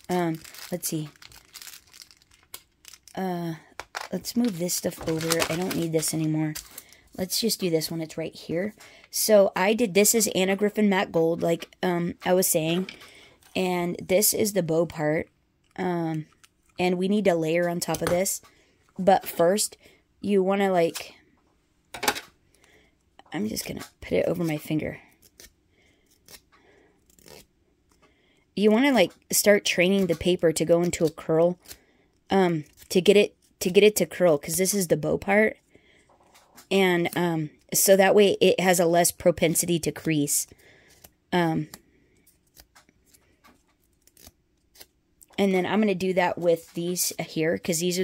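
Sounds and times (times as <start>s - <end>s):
paper crinkles: 0.0s - 3.2s, 3.8s - 7.2s.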